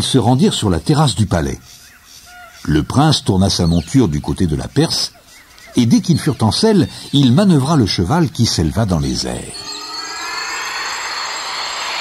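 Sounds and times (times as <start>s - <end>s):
high ringing tones: 8.8s - 12.0s.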